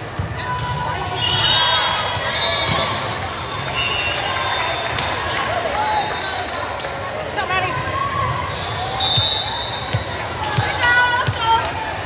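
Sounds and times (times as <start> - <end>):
crowd chatter echoing: 0.0 - 12.0
sneaker squeaks: 1.1 - 4.2.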